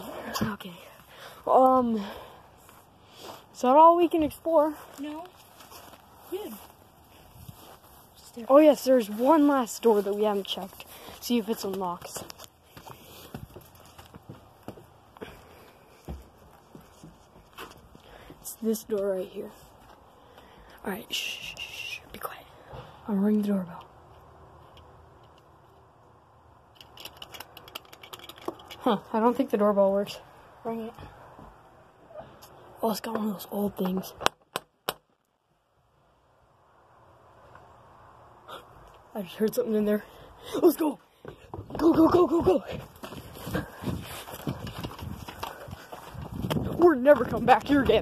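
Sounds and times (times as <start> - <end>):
running footsteps: 9.0 - 19.1, 41.2 - 48.0.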